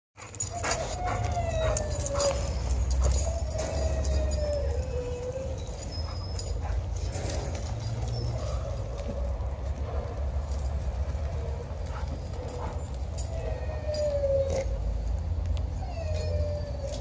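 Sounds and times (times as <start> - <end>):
dog whining: 0.2 - 9.5, 11.4 - 14.9, 15.7 - 17.0.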